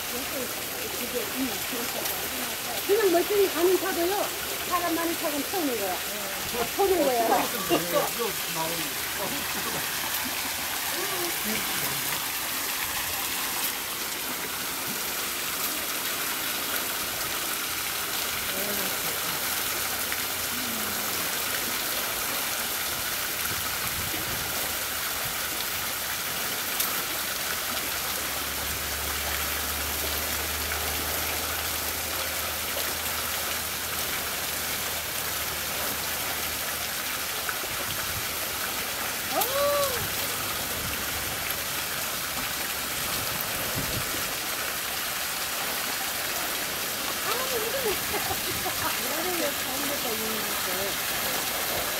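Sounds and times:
water splashing down rock: 0:00.0 - 0:51.9.

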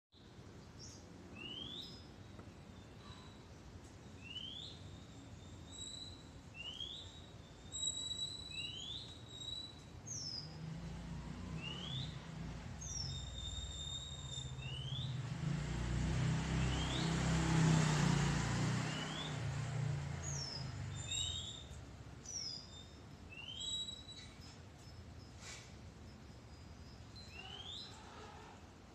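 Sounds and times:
small birds chirping: 0:00.2 - 0:28.7.

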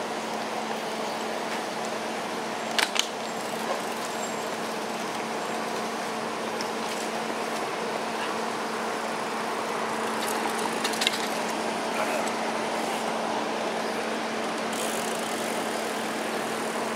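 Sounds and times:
constant low hum: 0:00.0 - 0:16.9
passing cars traffic noise: 0:00.0 - 0:16.9.

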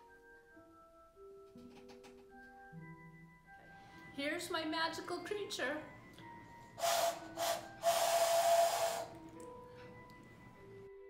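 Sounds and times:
soft background music: 0:00.0 - 0:11.0
breathy clay whistle tone: 0:06.8 - 0:09.2.

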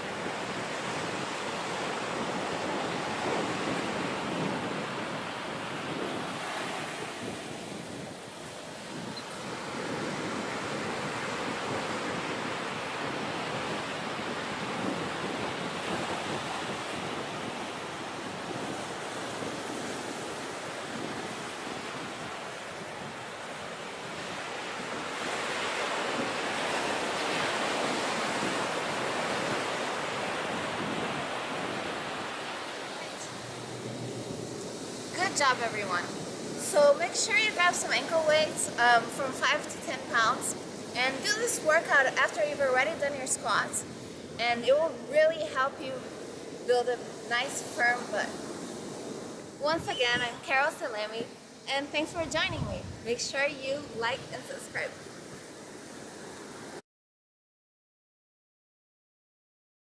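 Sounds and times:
ocean surf washing onto beach: 0:00.0 - 0:56.8
wind on microphone: 0:00.0 - 0:56.8.

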